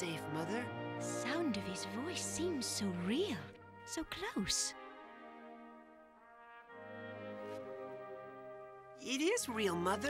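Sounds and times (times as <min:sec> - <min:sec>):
soft brass-like film music: 0:00.0 - 0:10.0.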